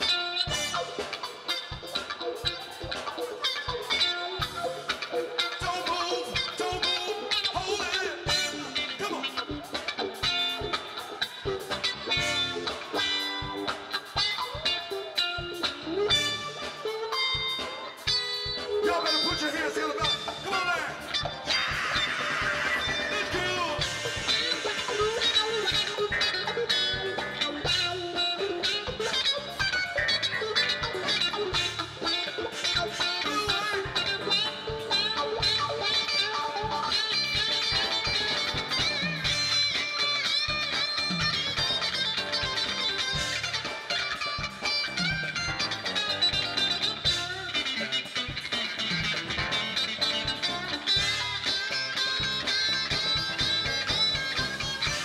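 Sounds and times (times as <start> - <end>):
drum groove: 0.0 - 55.0
electric guitar lead: 0.0 - 55.0.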